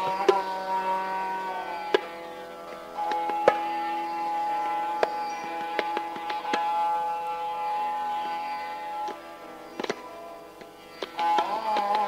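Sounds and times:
sarangi long bowed note: 0.0 - 12.0
tabla: 0.0 - 12.0.

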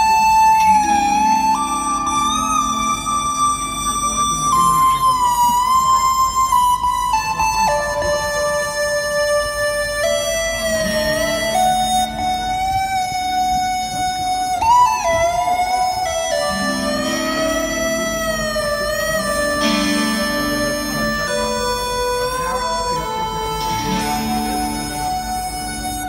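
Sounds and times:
rock band playing instrumental: 0.0 - 26.0.

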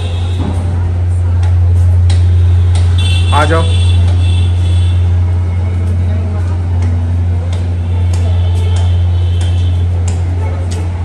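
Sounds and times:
loud low hum: 0.0 - 11.0.

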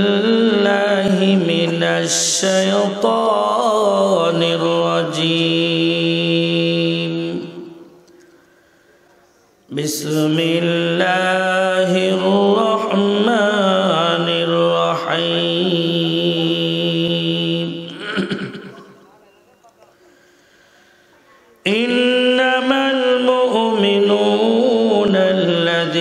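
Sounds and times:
man reciting melodically: 0.0 - 8.0, 9.7 - 20.7, 21.6 - 26.0.

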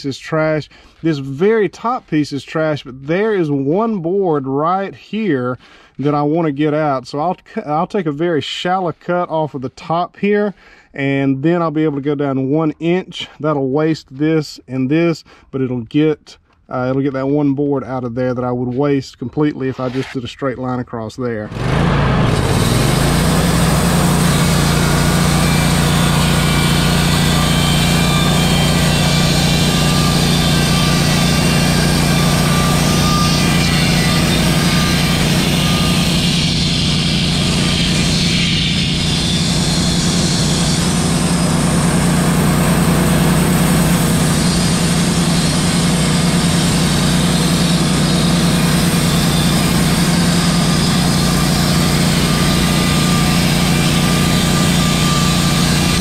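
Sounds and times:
band blade sawing wood: 21.5 - 56.0
sawmill engine droning: 21.5 - 56.0.

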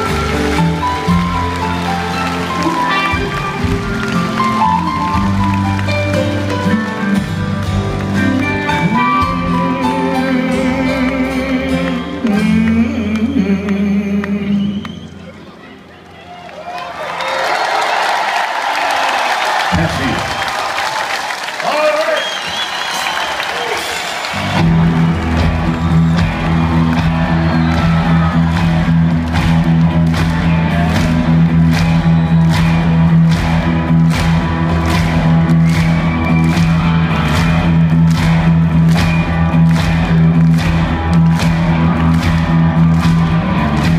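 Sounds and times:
live rock band playing: 0.0 - 14.5, 23.8 - 43.9
crowd cheering and applauding: 0.0 - 43.9.

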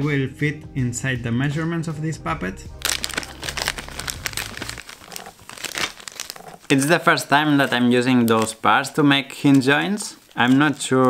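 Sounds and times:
plastic bag crinkling: 2.8 - 11.0.

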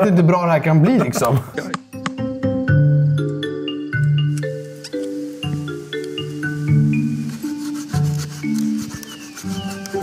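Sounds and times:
music of held ringing notes: 1.9 - 10.0
knife scraping wooden log: 6.9 - 10.0.

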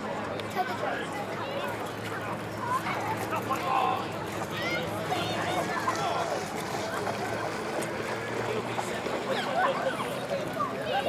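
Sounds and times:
faint distant voices: 0.0 - 11.0
low engine hum: 0.0 - 11.0.

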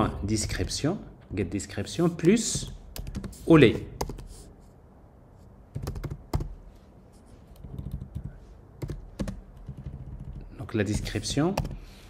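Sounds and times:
typing on computer keyboard: 2.5 - 3.4, 5.7 - 6.5, 7.5 - 11.8.

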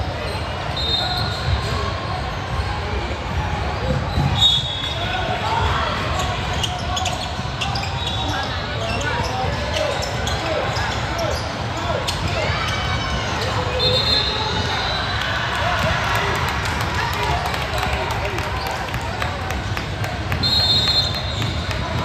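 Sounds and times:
hubbub of spectators shouting: 10.4 - 22.0.

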